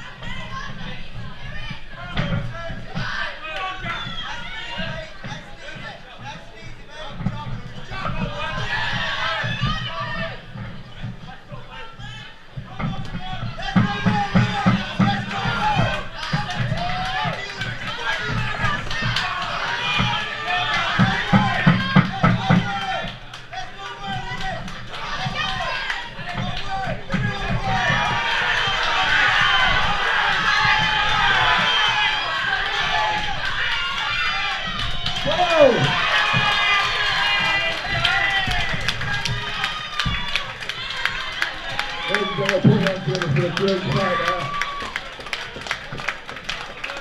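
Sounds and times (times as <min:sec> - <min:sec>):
crowd shouting and cheering: 0:00.0 - 0:47.0.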